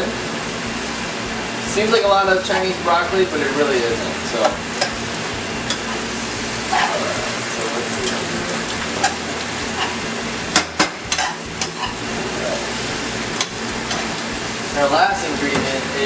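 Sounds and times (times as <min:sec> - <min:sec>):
noodles sizzling in a frying pan: 0:00.0 - 0:16.0.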